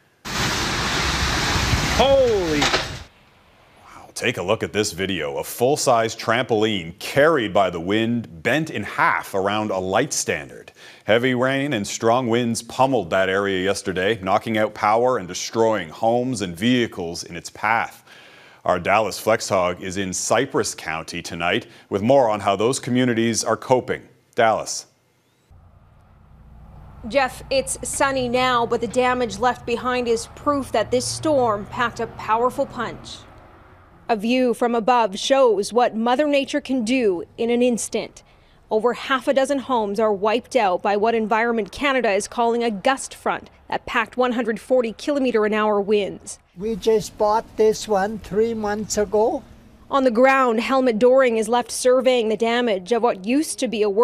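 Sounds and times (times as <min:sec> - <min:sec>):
heavy rain and strong wind: 0:00.2 - 0:03.1
faint low outdoor rumble: 0:25.4 - 0:52.3.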